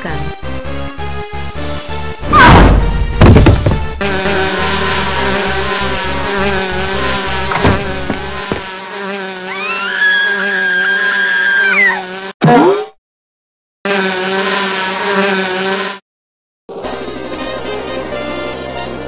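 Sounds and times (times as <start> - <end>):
cartoon bee swarm buzzing: 2.2 - 12.8, 13.9 - 16.0
whistle-like tone: 9.6 - 12.0.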